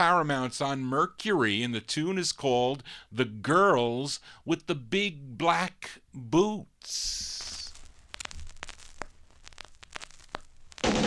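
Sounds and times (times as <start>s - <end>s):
vinyl record clicks and pops: 6.8s - 11.0s
band music from record: 10.7s - 11.0s.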